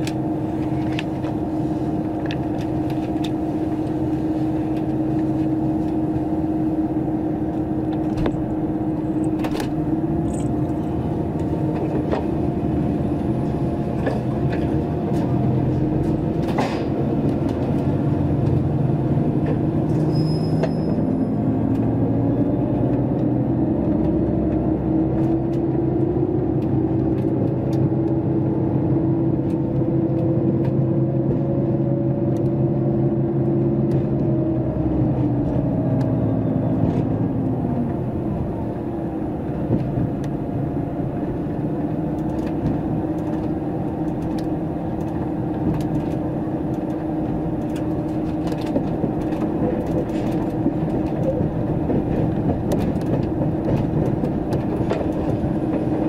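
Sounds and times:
diesel train engine drone: 0.0 - 56.0
train running rumble: 0.0 - 56.0
light clicks from rails: 42.0 - 56.0.

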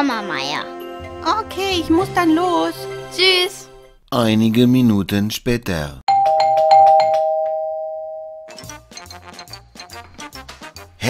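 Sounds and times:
light background music: 0.0 - 4.0, 8.5 - 11.0
two-tone doorbell chime: 6.1 - 8.6.

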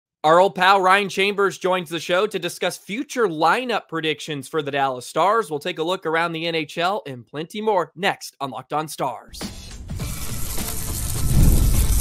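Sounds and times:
whoosh with heavy bass: 10.0 - 12.0.

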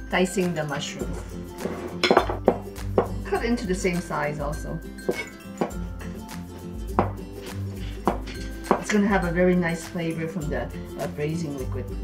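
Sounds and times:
background music: 0.0 - 12.0
cleaver chopping on cutting board: 7.0 - 7.2.

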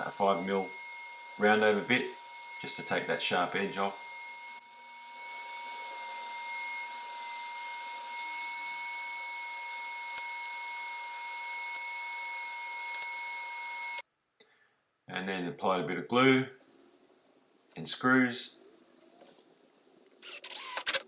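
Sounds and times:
trim router whining: 0.0 - 14.0.

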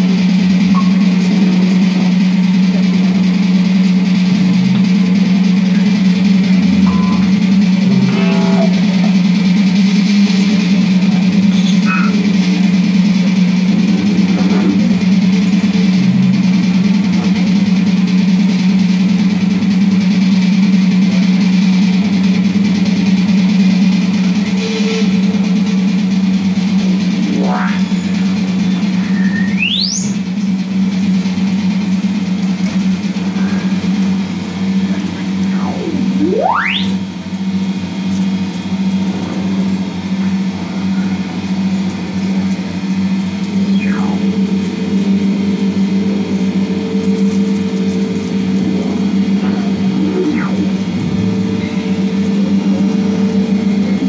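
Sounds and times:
electronic pitch sweep: 0.0 - 19.1, 24.4 - 30.9, 32.8 - 39.1, 41.6 - 54.0
loud low drone: 0.0 - 54.0.

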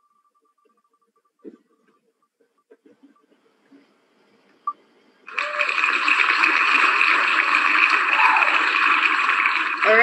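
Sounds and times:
recorded applause: 5.3 - 10.0.

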